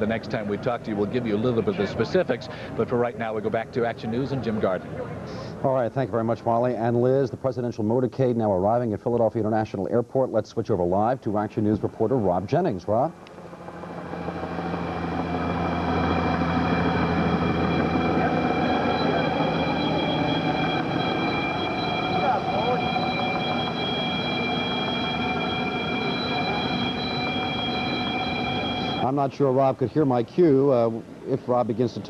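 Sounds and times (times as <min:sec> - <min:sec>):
aircraft turbine engines whining: 0:00.0 - 0:07.9, 0:08.5 - 0:32.0.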